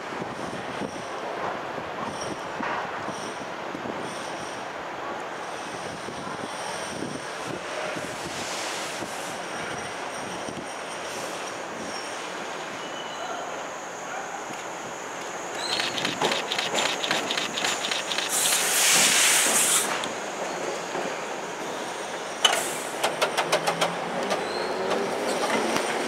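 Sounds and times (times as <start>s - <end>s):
train wheels rumbling on rail: 0.0s - 12.8s, 14.5s - 26.0s
high thin wheel squeal: 15.5s - 19.8s.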